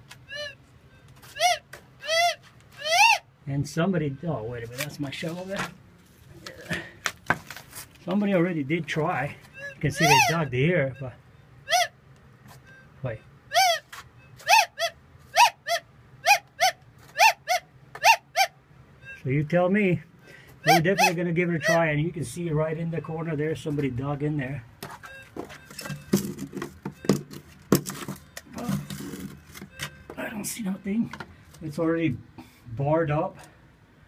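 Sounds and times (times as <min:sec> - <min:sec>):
metal detector tones: 0:09.3 - 0:11.9, 0:24.8 - 0:31.9.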